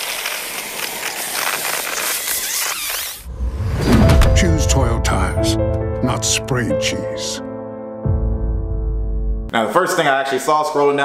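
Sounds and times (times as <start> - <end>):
aerosol can hissing and sputtering: 0.0 - 3.2.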